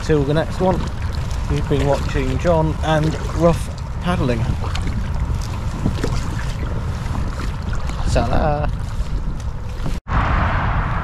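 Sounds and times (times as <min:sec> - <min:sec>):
paddle splashing water: 0:00.0 - 0:10.0
wind buffeting microphone: 0:00.0 - 0:11.0.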